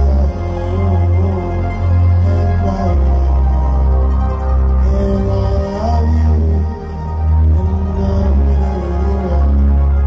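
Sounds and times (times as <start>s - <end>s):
heavy deep bass: 0.0s - 10.0s
live hip-hop music: 0.0s - 10.0s.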